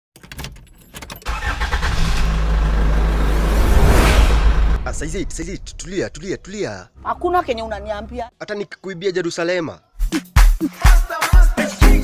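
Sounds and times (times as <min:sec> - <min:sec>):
rushing whoosh: 0:01.6 - 0:06.6
deep engine-like rumble: 0:01.6 - 0:06.7.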